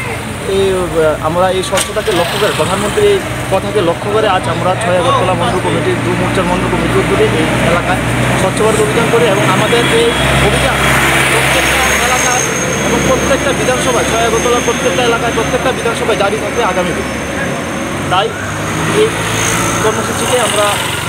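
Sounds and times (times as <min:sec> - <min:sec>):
road traffic: 0:00.0 - 0:21.0
vehicle engine drone: 0:00.0 - 0:21.0
man talking: 0:00.4 - 0:20.9.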